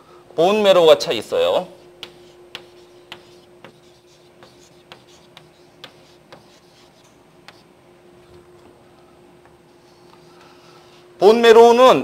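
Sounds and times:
chalk tapping and scratching: 1.8s - 7.7s, 9.7s - 11.1s.

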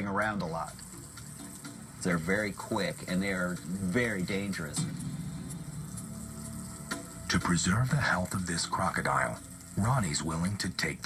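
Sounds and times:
low hum: 1.0s - 10.0s.

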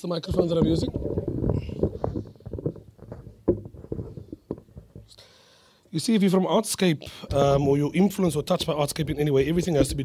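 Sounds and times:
microphone handling noise: 0.2s - 5.2s.

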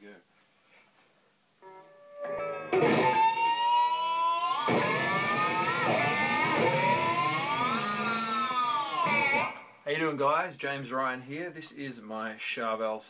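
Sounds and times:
distorted electric guitar harmonics: 1.6s - 9.8s.

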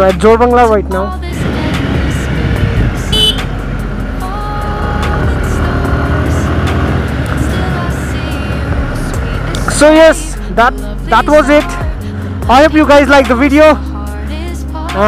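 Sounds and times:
motorcycle engine running: 1.0s - 13.4s
wind rushing over microphone: 1.4s - 3.2s.

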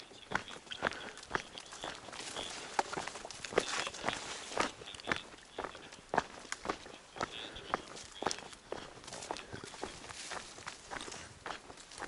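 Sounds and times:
footsteps on dirt trail: 0.0s - 12.0s.

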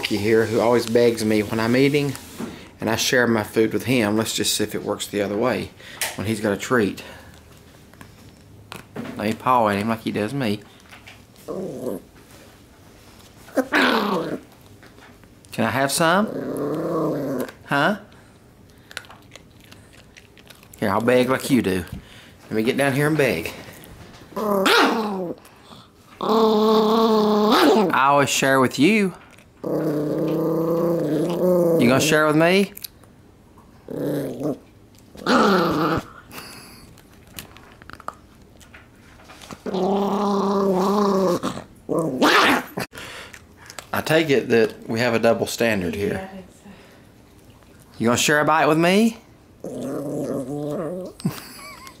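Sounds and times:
small dog growling: 11.4s - 12.1s, 13.5s - 14.5s, 15.9s - 17.7s, 24.3s - 28.0s, 29.6s - 32.4s, 33.8s - 36.9s, 39.6s - 42.9s, 49.6s - 51.8s.

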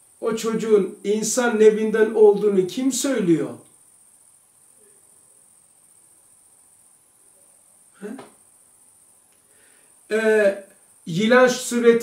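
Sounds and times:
steady high-pitched whine: 0.0s - 12.0s.

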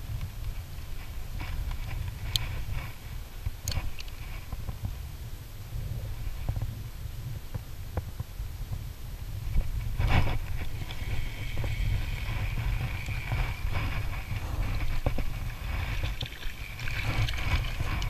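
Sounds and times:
wind buffeting microphone: 0.0s - 18.0s
fish splashing: 10.6s - 18.0s.

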